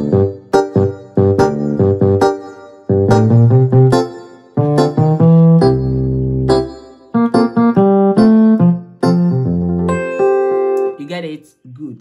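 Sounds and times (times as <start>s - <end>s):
electric piano chords and bass: 0.0s - 11.0s.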